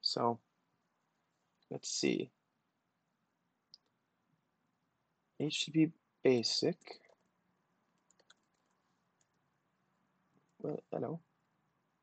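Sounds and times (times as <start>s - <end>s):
computer keyboard clicks: 8.0s - 9.4s.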